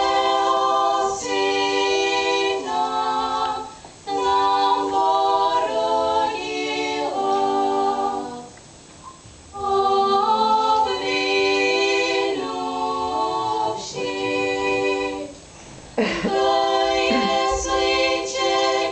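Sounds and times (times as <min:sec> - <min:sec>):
girls singing in harmony: 0:00.0 - 0:08.6, 0:09.5 - 0:18.9.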